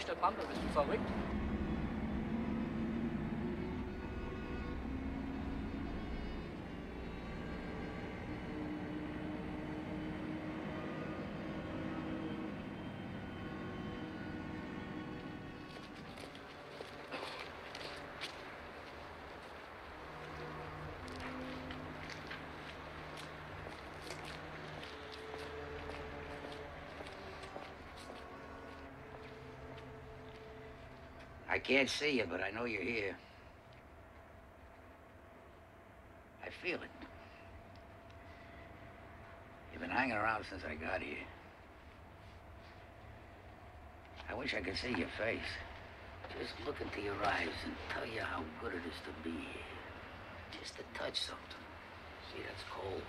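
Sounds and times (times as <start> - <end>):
bus rumbling inside: 0.0 - 31.9
faint engine hum: 0.0 - 53.0
footsteps on cobblestones: 0.3 - 31.5, 41.6 - 48.5.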